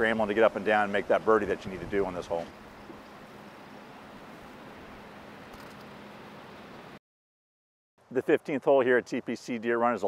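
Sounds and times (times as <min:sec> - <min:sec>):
faint background hiss: 0:08.0 - 0:10.0.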